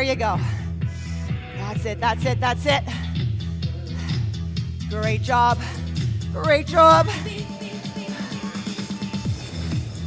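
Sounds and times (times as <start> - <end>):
workout music with steady beat: 0.0 - 10.0.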